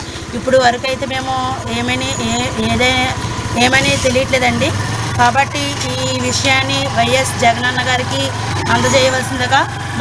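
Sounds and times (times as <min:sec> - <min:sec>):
low engine hum: 0:00.0 - 0:10.0
woman speaking: 0:00.2 - 0:10.0.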